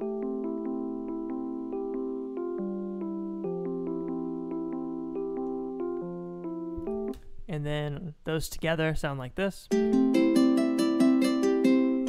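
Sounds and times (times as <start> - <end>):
electric piano chords: 0.0 - 7.2
man talking: 7.5 - 9.7.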